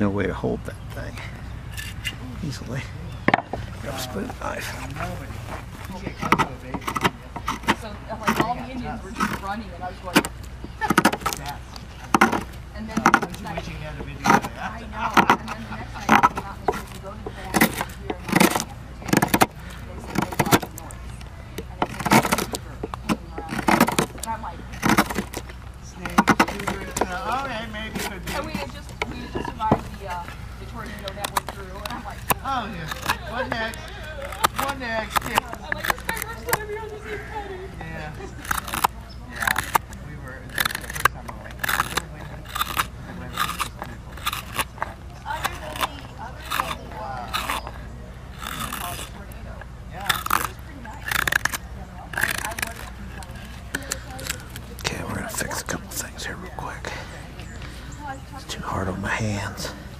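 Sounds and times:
voices talking: 0.0 - 59.9
knife scraping and cutting wood: 1.7 - 2.2, 3.3 - 36.7, 38.2 - 57.0.

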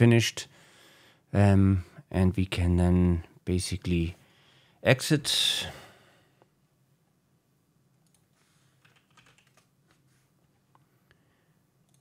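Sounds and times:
typing on computer keyboard: 8.0 - 10.0.

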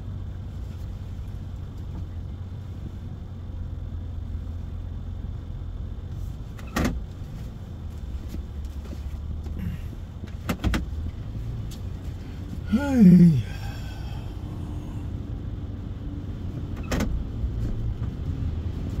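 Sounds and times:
truck engine humming: 0.0 - 17.4.

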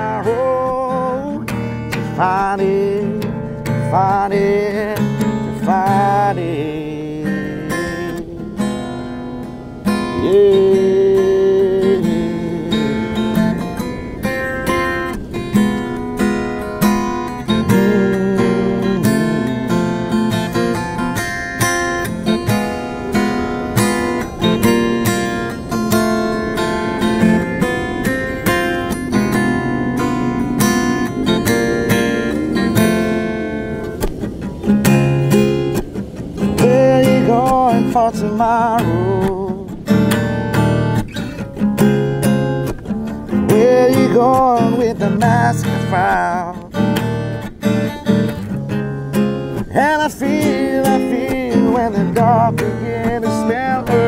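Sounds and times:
acoustic guitar picked and strummed: 0.0 - 54.0.

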